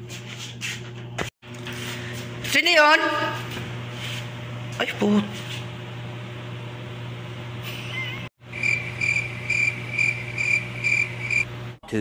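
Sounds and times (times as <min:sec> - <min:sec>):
cricket chirping: 0:08.5 - 0:11.5.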